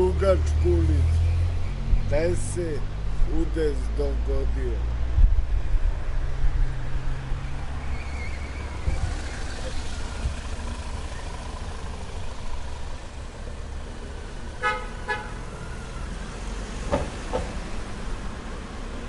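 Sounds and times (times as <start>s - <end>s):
street low rumble: 0.0s - 19.0s
vehicle horn toots: 14.6s - 15.4s.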